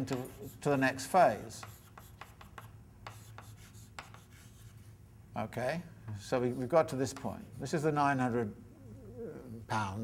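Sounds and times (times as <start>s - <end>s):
chalk tapping and scraping on blackboard: 0.0s - 4.9s, 6.9s - 7.8s.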